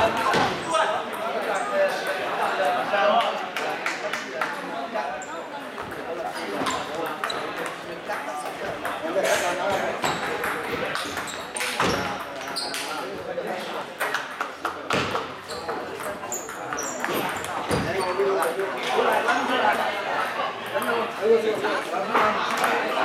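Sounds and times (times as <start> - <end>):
murmur of voices: 0.0 - 23.0
table tennis balls clicking: 7.0 - 13.1, 14.0 - 19.8.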